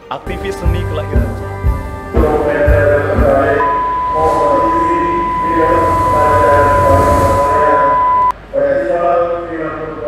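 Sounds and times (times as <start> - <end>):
music with singing voice: 0.3 - 8.0
high-pitched electronic beep: 3.6 - 8.3.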